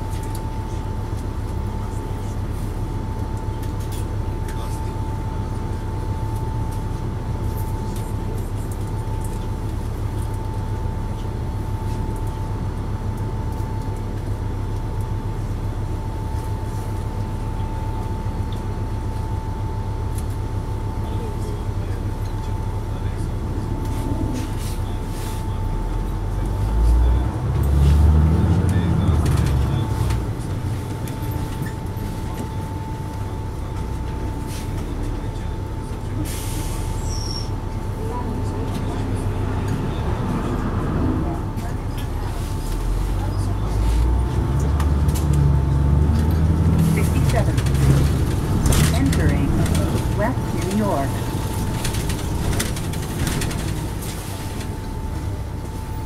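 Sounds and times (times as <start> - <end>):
bus diesel engine rumbling: 0.0 - 56.0.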